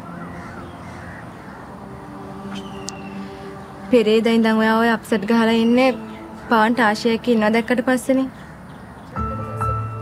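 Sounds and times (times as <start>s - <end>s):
crows cawing: 0.0s - 1.9s.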